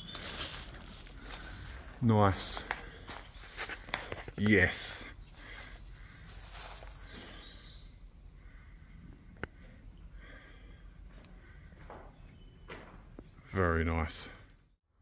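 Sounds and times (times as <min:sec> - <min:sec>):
footsteps scuffing over dead leaves: 0:00.0 - 0:04.4, 0:06.2 - 0:07.2.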